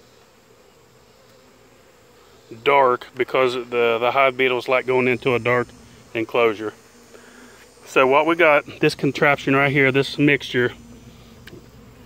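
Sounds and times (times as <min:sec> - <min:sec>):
bees buzzing: 0:00.0 - 0:12.0.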